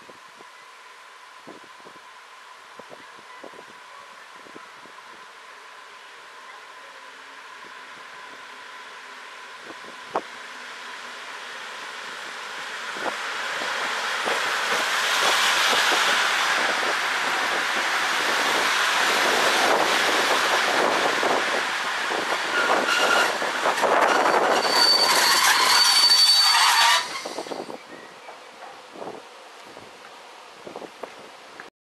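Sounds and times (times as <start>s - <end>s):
train wheels rolling on rails: 6.6s - 31.7s
high brake squeals: 22.5s - 28.2s.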